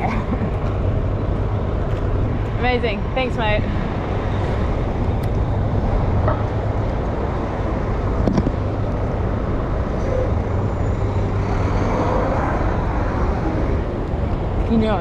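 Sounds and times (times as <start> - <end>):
city street traffic rumble: 0.0 - 15.0.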